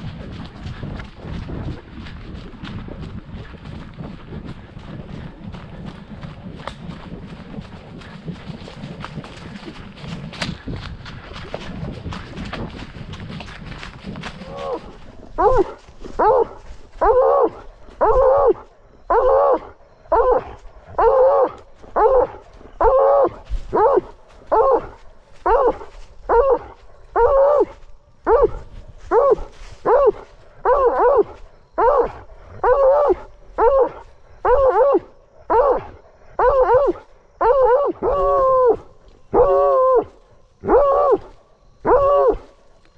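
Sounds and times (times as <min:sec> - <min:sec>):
hound baying: 0:14.2 - 0:42.5.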